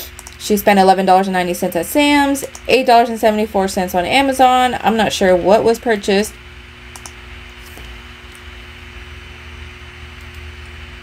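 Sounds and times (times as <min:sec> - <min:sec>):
low steady hum: 0:00.0 - 0:11.0
faint clicks: 0:06.9 - 0:07.2.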